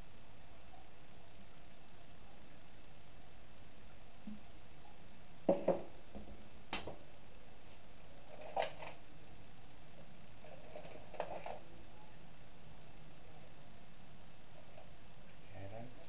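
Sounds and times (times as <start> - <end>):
steady low hiss: 0.0 - 16.0.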